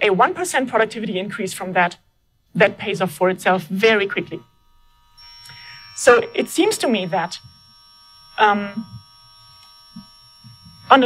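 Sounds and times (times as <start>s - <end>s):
woman speaking: 0.0s - 2.0s, 2.6s - 4.4s, 6.0s - 7.4s, 8.4s - 8.9s
steady electrical whine: 0.0s - 11.0s.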